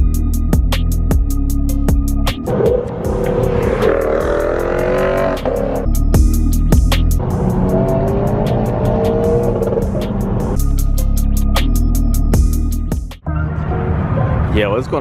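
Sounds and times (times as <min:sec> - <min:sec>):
car engine accelerating hard: 0:02.4 - 0:06.0, 0:07.2 - 0:10.6
wind and road noise: 0:02.4 - 0:06.0, 0:06.7 - 0:10.7, 0:13.2 - 0:15.0.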